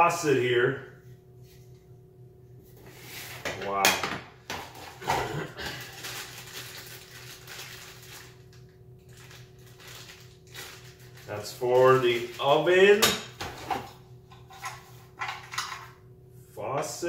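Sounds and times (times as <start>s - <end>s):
steady low hum: 0.0s - 17.0s
plastic bags rustling: 4.8s - 13.0s.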